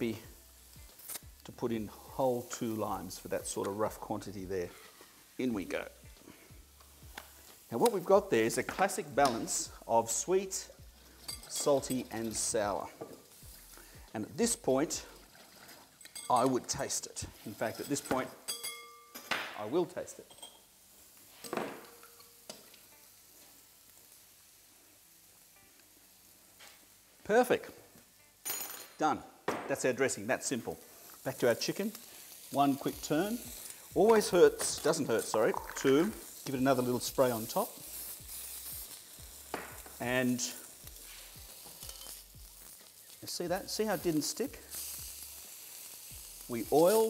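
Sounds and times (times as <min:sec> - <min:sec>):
chicken sizzling on a grill: 0:00.0 - 0:18.3, 0:20.0 - 0:28.7, 0:29.8 - 0:47.0.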